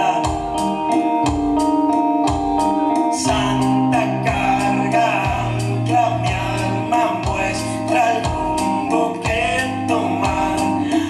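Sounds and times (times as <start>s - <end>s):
man singing: 0.0s - 1.4s, 3.0s - 11.0s
guitar: 0.0s - 11.0s
percussion beat: 0.0s - 11.0s.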